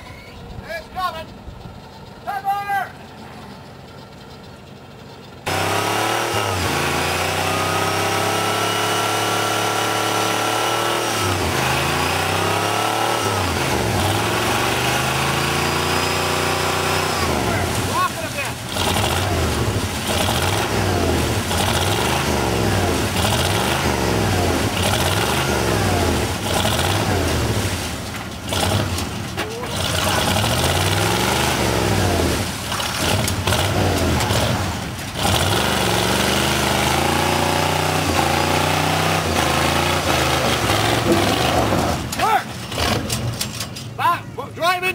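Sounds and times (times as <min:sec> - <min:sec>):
diesel engine revving: 0:01.0 - 0:43.8
wheels spinning in mud: 0:11.3 - 0:43.6.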